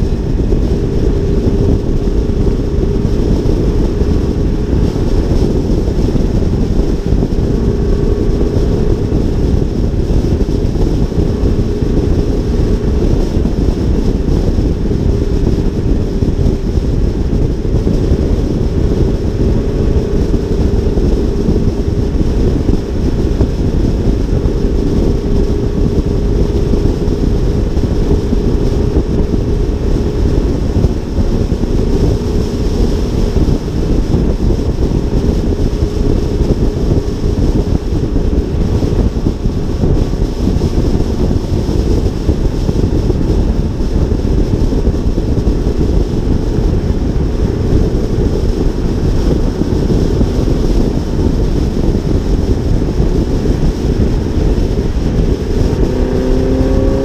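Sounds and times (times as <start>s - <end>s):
car road and engine drone: 0.0s - 57.0s
wind buffeting microphone: 0.0s - 57.0s.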